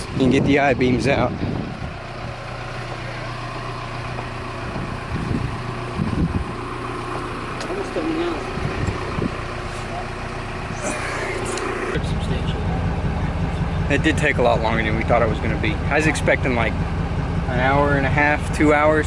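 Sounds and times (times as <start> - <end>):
engine hum and cabin noise: 0.0 - 19.0
faint voices: 7.6 - 16.8.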